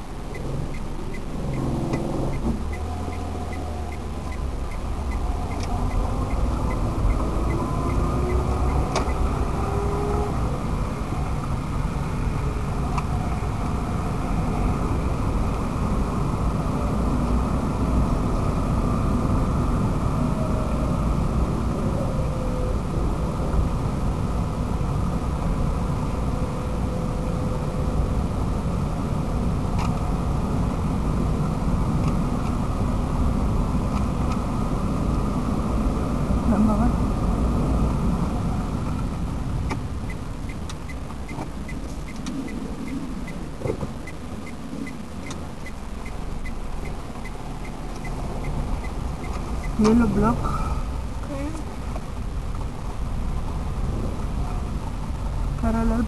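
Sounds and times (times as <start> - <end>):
engine and tyre rumble: 0.0 - 56.0
wind through open car window: 0.0 - 56.0.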